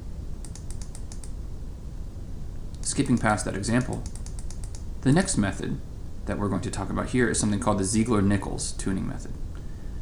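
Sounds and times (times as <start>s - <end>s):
low room hum: 0.0s - 10.0s
light computer clicks: 0.4s - 1.4s, 2.7s - 4.9s.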